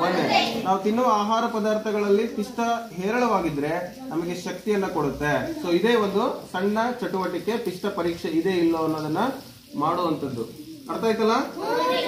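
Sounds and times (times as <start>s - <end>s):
man speaking: 0.0s - 11.6s.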